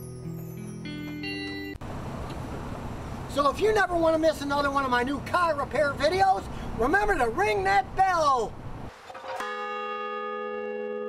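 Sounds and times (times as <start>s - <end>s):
large bell ringing: 9.2s - 11.0s.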